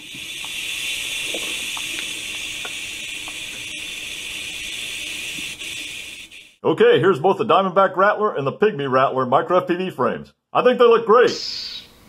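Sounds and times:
steady hiss: 0:00.0 - 0:06.6.

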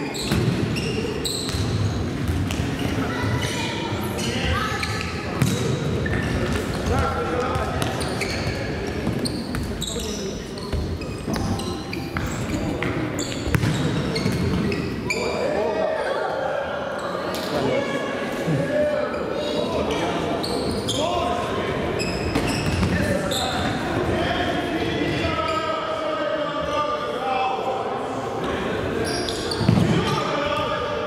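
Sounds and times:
football kicked and bouncing: 0:13.5 - 0:13.8.

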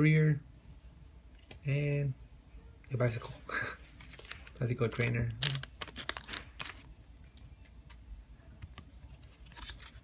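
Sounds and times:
cards rustling: 0:03.1 - 0:07.0, 0:08.6 - 0:10.0
foil wrapper crinkling: 0:04.0 - 0:06.9.

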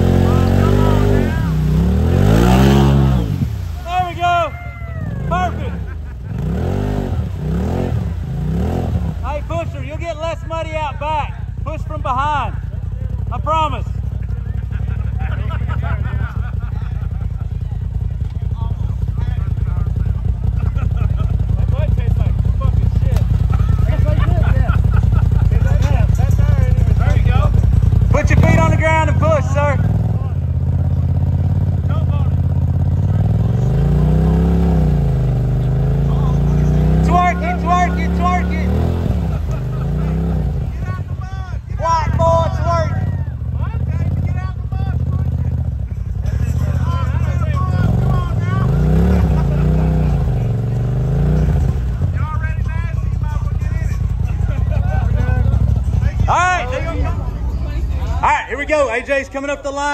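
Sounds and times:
engine revving: 0:00.0 - 0:10.8, 0:19.0 - 0:56.8
voices: 0:00.0 - 0:59.9.

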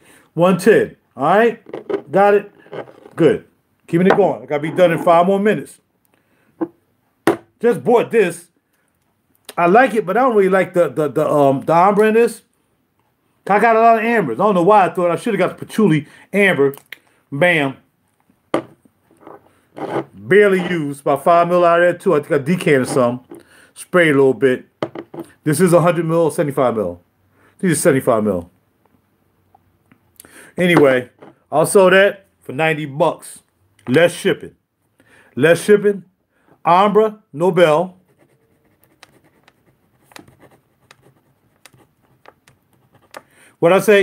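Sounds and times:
faint handling noise: 0:01.6 - 0:03.3
glass bottle knock: 0:06.6 - 0:07.5
pen scratching on paper: 0:19.8 - 0:20.7, 0:38.0 - 0:43.3.

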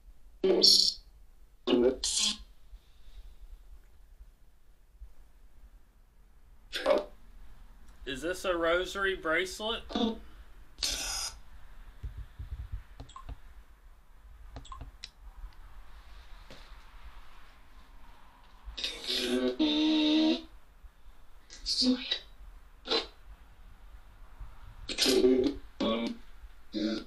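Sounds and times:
voice-like bursts: 0:01.7 - 0:02.4, 0:06.7 - 0:07.2, 0:08.1 - 0:11.4, 0:18.8 - 0:20.5, 0:21.5 - 0:23.2, 0:24.9 - 0:27.0.

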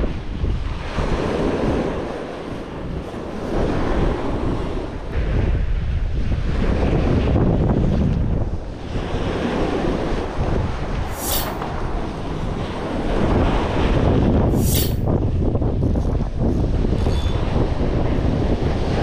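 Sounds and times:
wind buffeting microphone: 0:00.0 - 0:19.0
small waves washing on shore: 0:08.7 - 0:15.1
brief high hiss: 0:11.1 - 0:11.6, 0:14.5 - 0:15.1.

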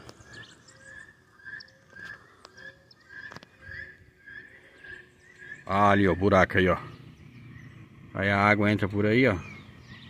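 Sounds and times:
faint bird chirping: 0:00.0 - 0:10.0.

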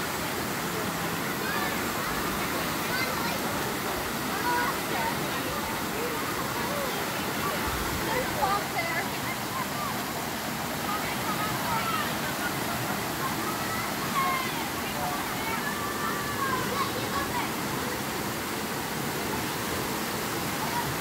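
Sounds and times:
creek water rushing over rock: 0:00.0 - 0:21.0.

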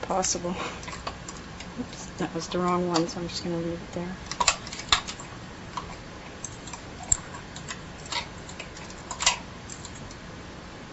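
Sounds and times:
tape hiss: 0:00.0 - 0:10.9.

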